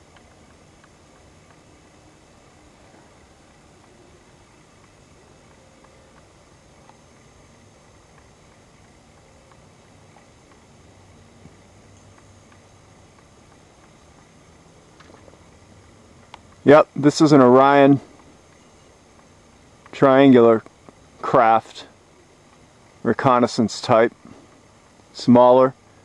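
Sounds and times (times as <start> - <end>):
low hum: 0.0 - 26.0
night outdoor background noise: 0.0 - 26.0.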